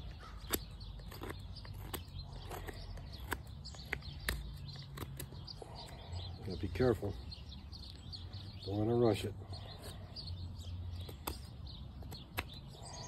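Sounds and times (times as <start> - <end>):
blade cutting wood: 0.0 - 6.0.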